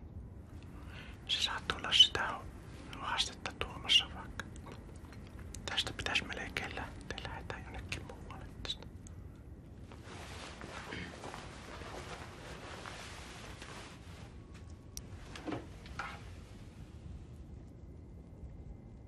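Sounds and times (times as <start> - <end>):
man whispering and muttering: 1.1 - 9.2, 10.2 - 13.1, 15.7 - 16.5.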